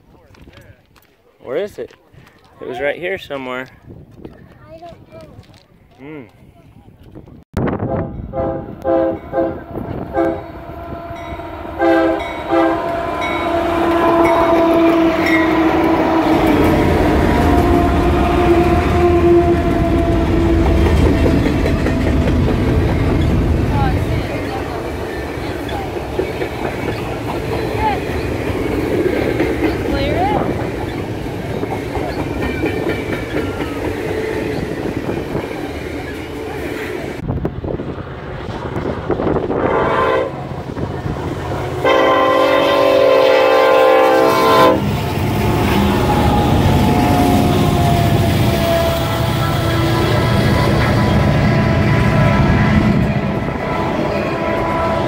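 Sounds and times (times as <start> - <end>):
locomotive air horn: 7.8 - 21.3, 39.6 - 40.4, 41.7 - 55.0
freight train wheel clatter: 19.6 - 37.2.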